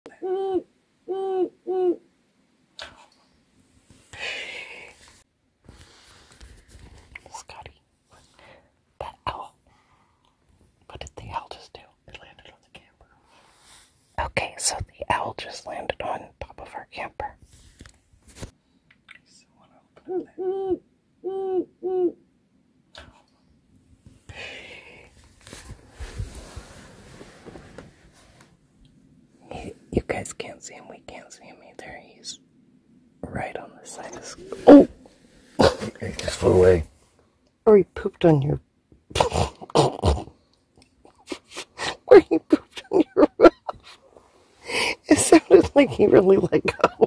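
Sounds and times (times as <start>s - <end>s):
owl hooting: 0.1s - 2.0s, 20.1s - 22.2s, 34.3s - 35.0s
hushed whispering: 2.8s - 3.2s, 7.2s - 8.3s, 23.0s - 23.3s, 29.4s - 32.4s, 33.2s - 35.0s.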